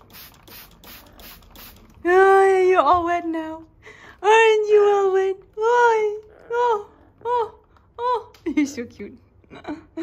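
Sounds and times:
spray bottle squirting mist: 0.0 - 2.0.

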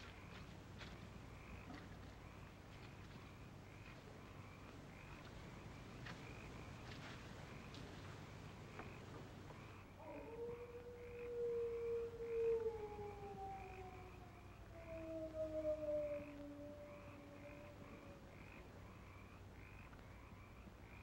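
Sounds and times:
faint rhythmic chirping: 0.0 - 21.0
dog howling: 10.0 - 18.4.

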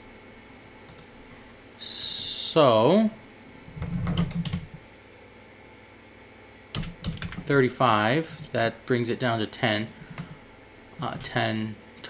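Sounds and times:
computer keyboard keystrokes: 3.8 - 4.7, 6.7 - 7.5.

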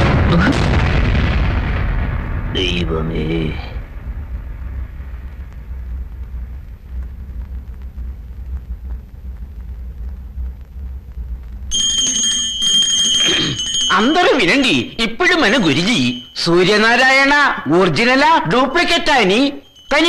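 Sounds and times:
low soundtrack rumble: 0.0 - 11.7
high sustained ringing tone: 11.7 - 17.2, 19.1 - 20.0.

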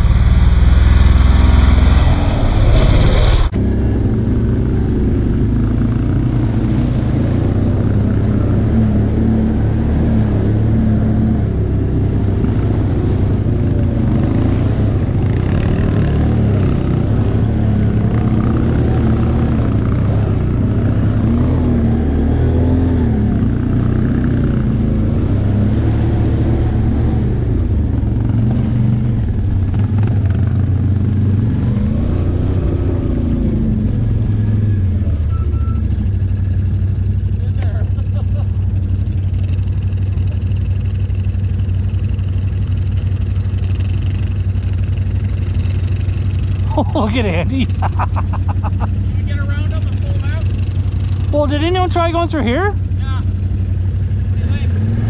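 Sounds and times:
atv engine revving and idling: 0.0 - 55.0.

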